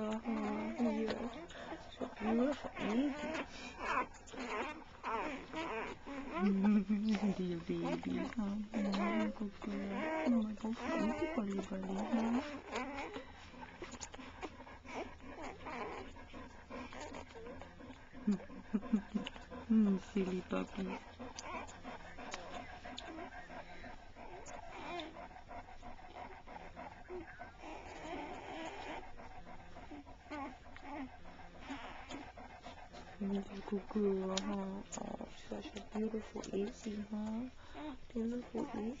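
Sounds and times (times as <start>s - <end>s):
puppies grunting and squeaking: 0.0s - 39.0s.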